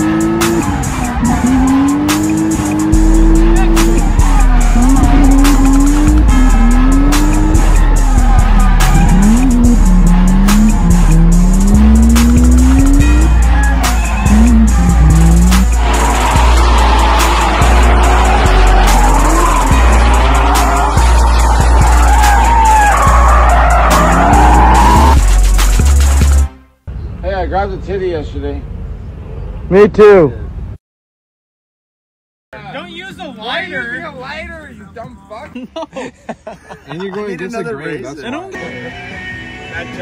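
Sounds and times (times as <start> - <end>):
car engine revving: 0.0 - 26.5
hip-hop music with heavy bass: 0.0 - 26.7
tyre squeal: 0.4 - 25.2.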